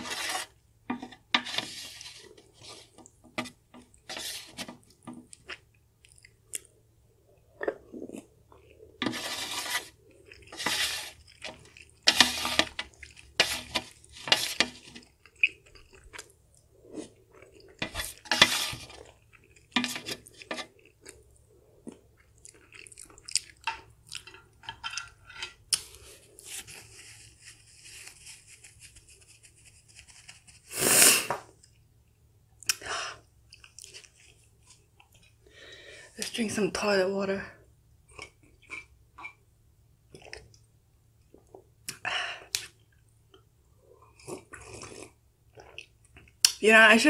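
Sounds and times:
person chewing crunchy food: 4.8 - 28.5, 33.5 - 35.4, 38.0 - 39.0, 42.6 - 46.5
tissue rustling: 26.0 - 30.9
slurping sips from a mug: 30.7 - 31.5.

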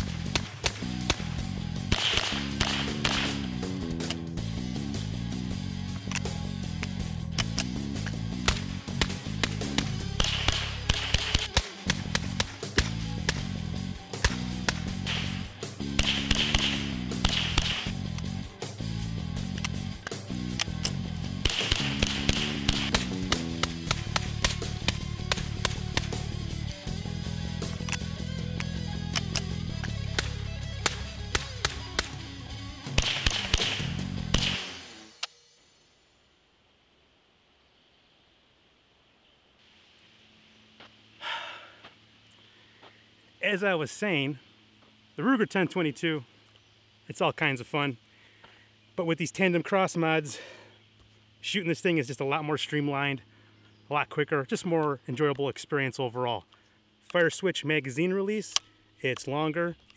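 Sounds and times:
rapid rifle fire: 0.0 - 3.5, 8.4 - 13.6, 14.2 - 18.1, 21.4 - 26.4, 30.1 - 35.0
background music: 0.0 - 35.0.

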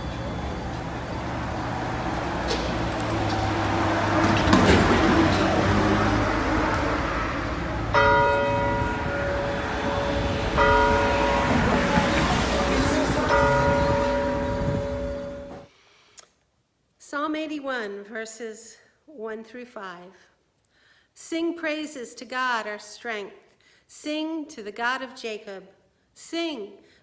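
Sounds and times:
rushing noise: 0.0 - 15.7
church bell ringing: 6.3 - 15.7.

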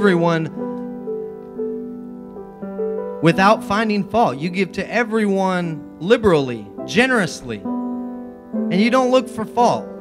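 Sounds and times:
soft electric piano chords: 0.0 - 10.0.

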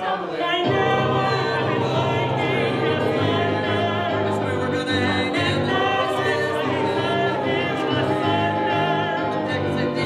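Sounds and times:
group singing sustained notes: 0.0 - 10.0
keyboard accompaniment: 0.0 - 10.0.

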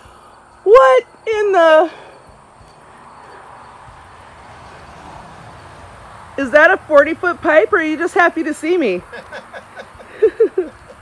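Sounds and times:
low even outdoor rush: 0.0 - 11.0.

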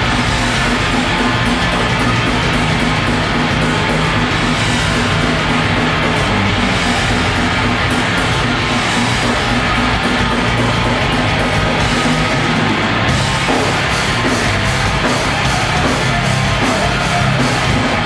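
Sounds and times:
death metal band playing: 0.0 - 18.0.

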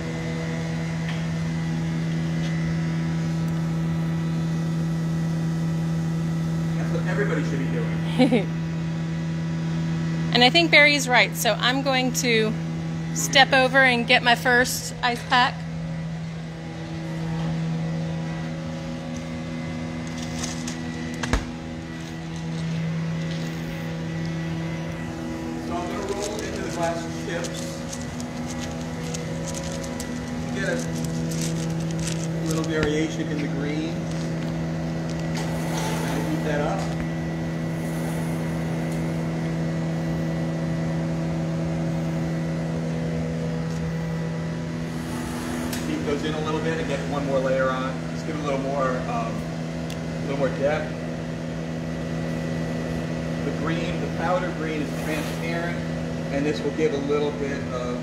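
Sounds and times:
furnace blowers humming: 0.0 - 58.0.

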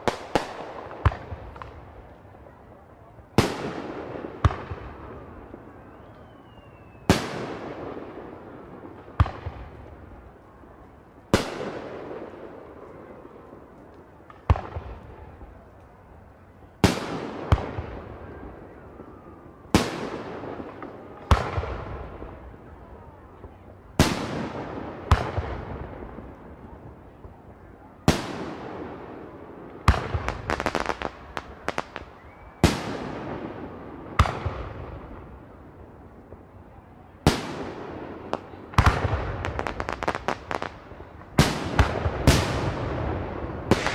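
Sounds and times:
fireworks bangs: 0.0 - 15.9, 16.6 - 43.9.

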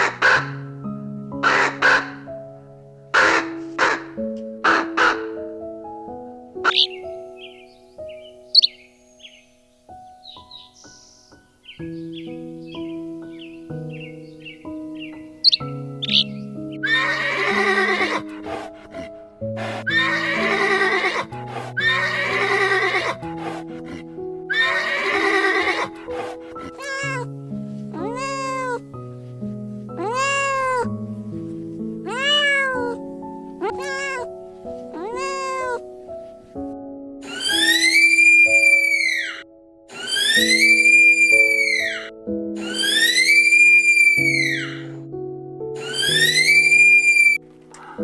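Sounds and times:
soft piano music: 0.0 - 48.0
horse whinnies: 15.4 - 18.7, 19.6 - 27.3, 32.1 - 32.9, 37.2 - 44.9, 45.8 - 48.0
cat meows: 16.8 - 18.2, 26.6 - 27.3, 28.0 - 28.8, 30.0 - 30.9, 32.0 - 33.0, 33.6 - 34.3, 35.0 - 35.8, 37.3 - 44.9, 45.8 - 48.0.

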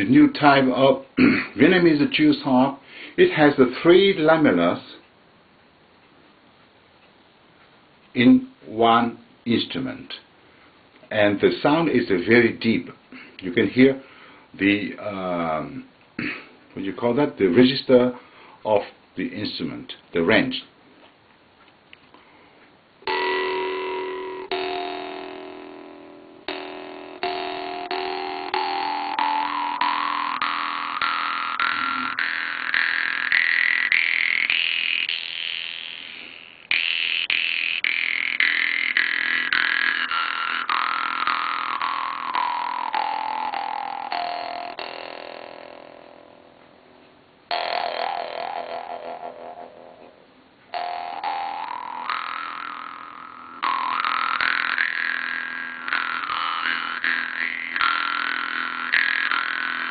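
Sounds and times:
jew's harp plucked over drone: 23.0 - 59.9.

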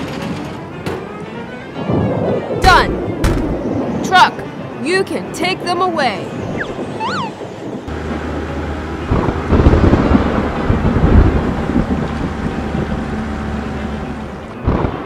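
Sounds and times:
thunder rumbling: 0.6 - 15.0
wind noise: 1.7 - 8.1, 8.8 - 13.4
up-and-down tone: 6.6 - 7.4.

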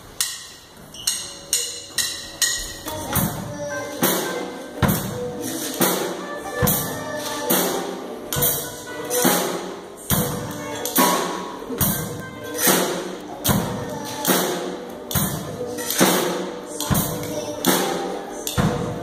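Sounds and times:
drum kit beat: 0.1 - 19.0
keyboard: 1.0 - 19.0
child's voice at microphone: 2.8 - 9.5, 10.1 - 19.0.

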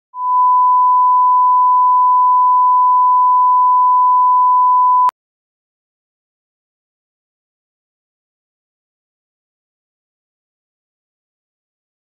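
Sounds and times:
steady sine tone: 0.2 - 5.1.

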